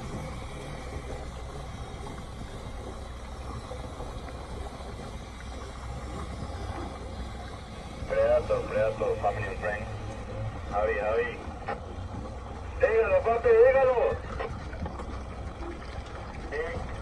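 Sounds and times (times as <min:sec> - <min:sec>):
outboard motors idling: 0:00.0 - 0:17.0.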